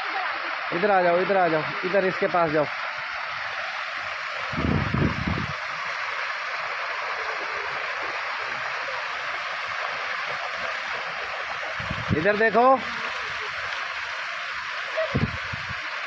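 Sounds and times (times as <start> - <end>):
waterfall pouring into pool: 0.0 - 16.0.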